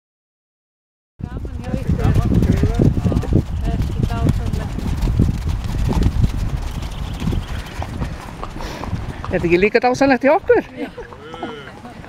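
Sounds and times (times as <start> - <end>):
people talking: 1.2 - 4.9, 9.3 - 12.0
horse hooves clopping on dirt: 1.2 - 12.0.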